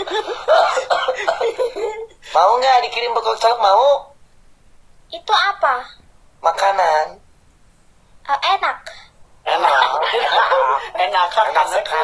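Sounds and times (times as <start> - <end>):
person laughing: 0.0 - 2.2, 9.5 - 10.9.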